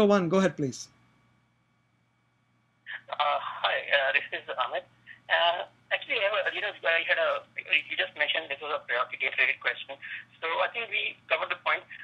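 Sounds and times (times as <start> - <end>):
faint steady hum: 0.0 - 12.0
person talking over telephone: 2.9 - 12.0.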